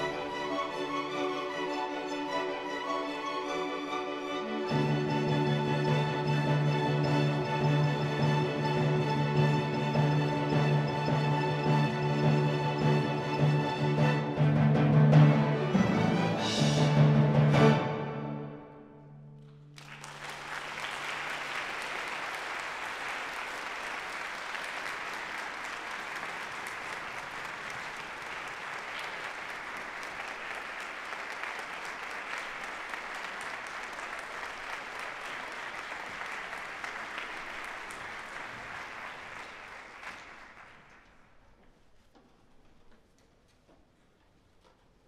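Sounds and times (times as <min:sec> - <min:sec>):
audience applauding: 0:19.7 - 0:41.5.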